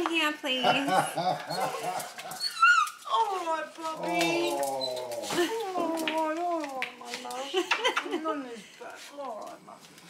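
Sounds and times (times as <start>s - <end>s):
small dog crying: 1.6s - 3.3s.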